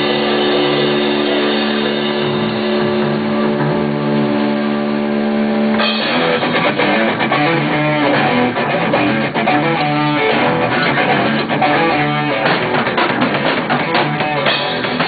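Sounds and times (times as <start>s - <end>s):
held electric guitar chord: 0.0s - 12.8s
rock band playing: 0.0s - 15.0s.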